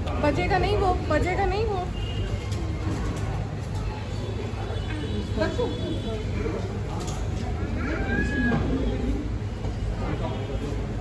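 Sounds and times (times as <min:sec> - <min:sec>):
low background voices: 0:00.0 - 0:11.0.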